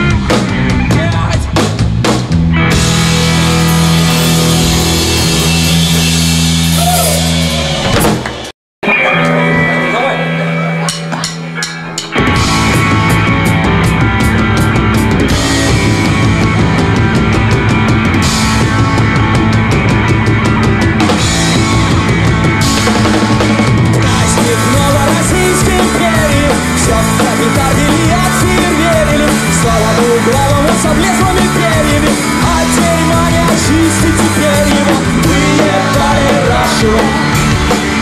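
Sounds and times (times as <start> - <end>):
punk rock band playing: 0.0 - 38.0
ringing electric guitar: 2.6 - 7.9.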